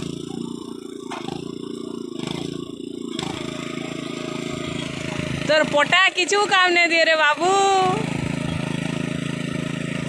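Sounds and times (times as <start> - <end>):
power tiller engine running: 0.0 - 10.0.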